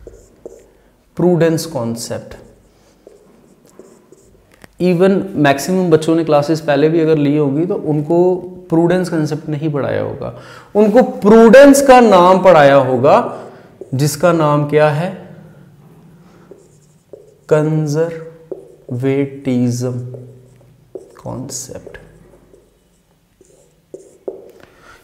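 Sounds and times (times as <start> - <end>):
marker scratching on whiteboard: 0.0 - 0.8, 1.5 - 4.7, 13.7 - 14.5, 16.2 - 24.7.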